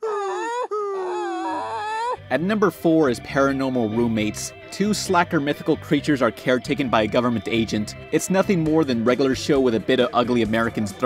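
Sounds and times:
cartoon voice wailing: 0:00.0 - 0:02.2.

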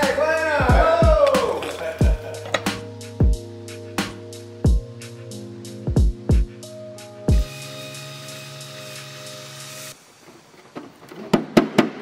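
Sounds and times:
background music chord: 0:00.0 - 0:10.0.

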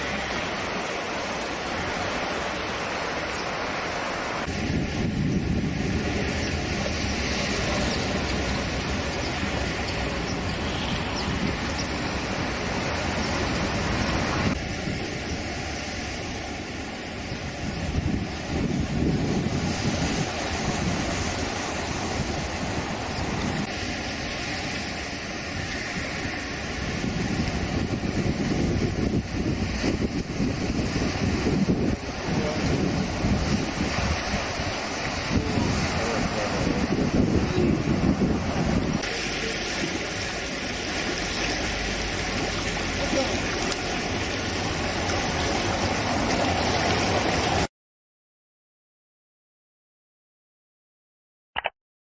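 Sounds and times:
waves breaking on rocks: 0:00.0 - 0:47.7
wind buffeting microphone: 0:04.4 - 0:39.1.

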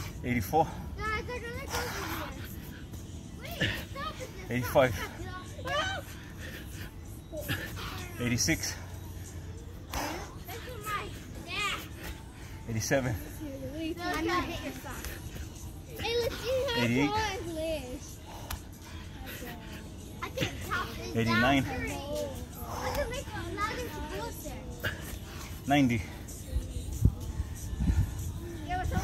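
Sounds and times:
children calling and shouting: 0:00.0 - 0:29.0.

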